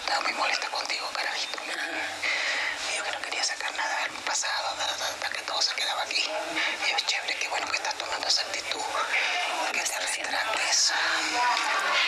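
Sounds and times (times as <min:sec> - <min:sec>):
women talking in hushed voices: 0:00.0 - 0:12.0.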